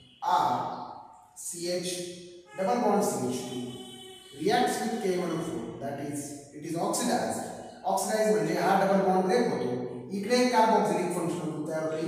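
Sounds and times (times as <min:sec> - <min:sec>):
man's voice utterances: 0:00.2 - 0:00.7, 0:01.4 - 0:02.0, 0:02.6 - 0:03.6, 0:04.3 - 0:12.0.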